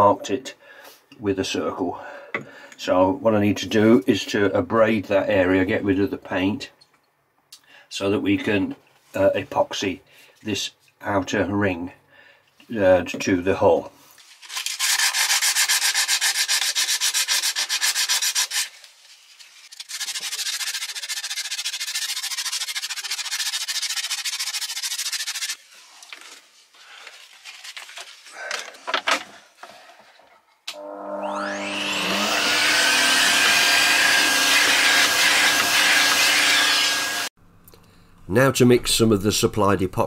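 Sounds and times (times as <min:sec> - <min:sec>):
sandpaper scrubbing: 0:14.2 - 0:28.3, 0:32.2 - 0:37.2
vacuum cleaner whine: 0:30.7 - 0:37.3.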